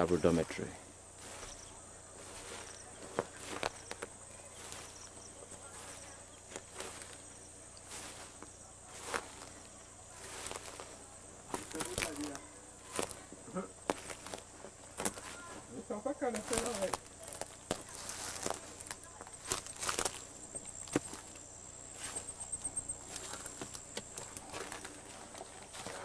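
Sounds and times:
faint voices: 0.0s - 26.0s
footsteps through dry leaves: 1.1s - 26.0s.

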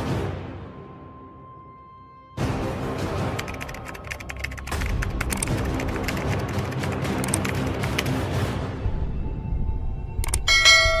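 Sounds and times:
quick clicks: 3.3s - 8.1s, 10.2s - 10.4s
bright bell-like chime: 10.4s - 11.0s.

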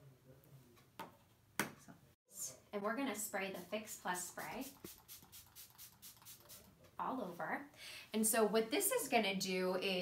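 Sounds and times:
pump spray misting: 4.6s - 6.6s.

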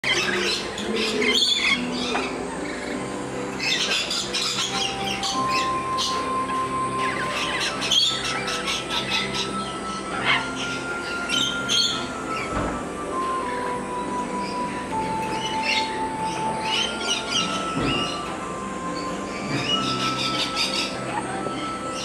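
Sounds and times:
parrots squawking: 0.0s - 12.6s, 13.4s - 22.0s
background music with held notes: 0.0s - 22.0s.

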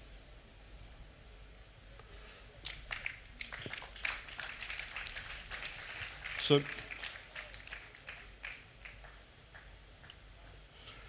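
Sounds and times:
audience murmuring and rustling: 0.2s - 11.0s.

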